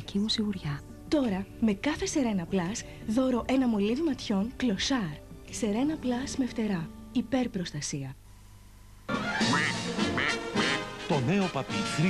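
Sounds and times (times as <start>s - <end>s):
music: 0.0s - 8.1s, 9.1s - 12.0s
duck quacking: 9.4s - 10.9s.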